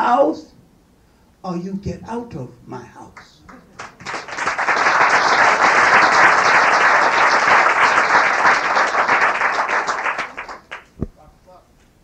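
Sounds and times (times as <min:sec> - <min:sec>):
audience applauding: 0:03.5 - 0:11.0.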